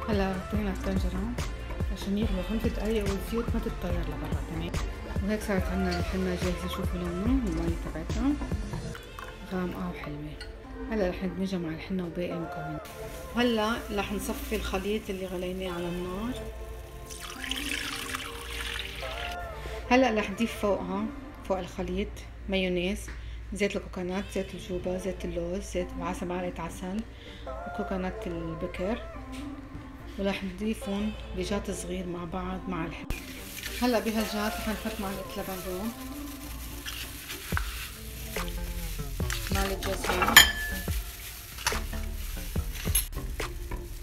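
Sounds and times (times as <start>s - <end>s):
liquid pouring through strainer: 16.4s - 19.4s
metal spoon scraping bowl: 39.4s - 40.9s
spoon tapping glass: 40.1s - 40.9s.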